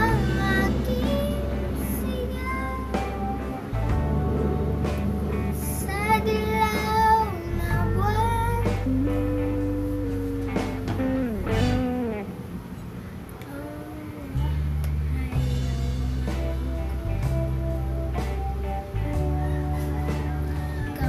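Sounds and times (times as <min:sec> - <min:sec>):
girl singing a slow ballad: 0:00.0 - 0:12.2, 0:13.3 - 0:21.0
acoustic guitar backing track: 0:00.0 - 0:13.3, 0:14.2 - 0:21.0.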